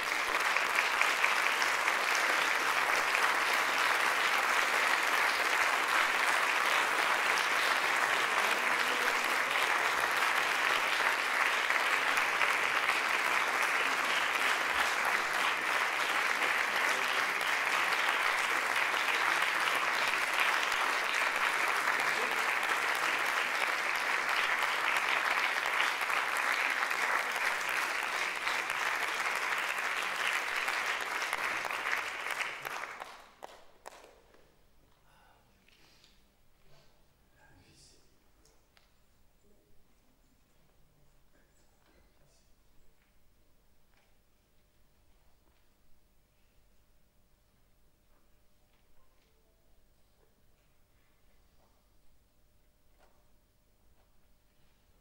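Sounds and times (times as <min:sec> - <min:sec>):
audience applauding: 0:00.0 - 0:34.2.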